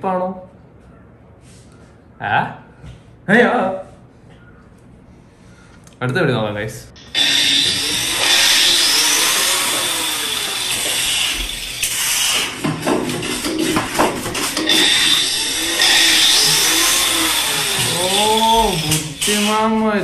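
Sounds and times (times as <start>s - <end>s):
angle grinder whining: 7.0s - 19.8s
sharp knocks and clatter: 10.7s - 19.1s.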